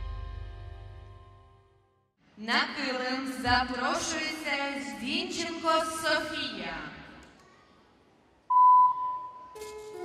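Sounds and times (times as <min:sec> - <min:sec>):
voice: 0:02.4 - 0:06.9
loud steady beep: 0:08.5 - 0:09.6.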